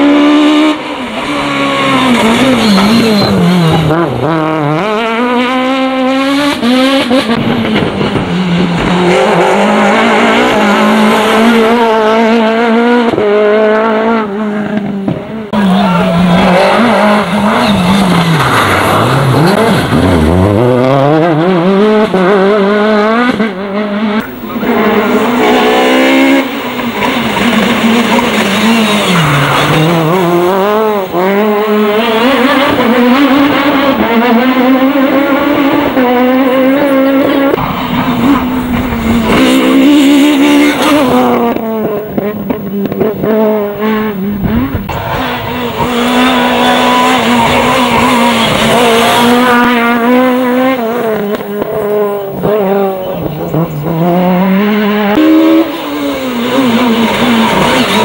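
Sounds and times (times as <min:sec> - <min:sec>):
car engine revving high: 0:00.0 - 0:58.0.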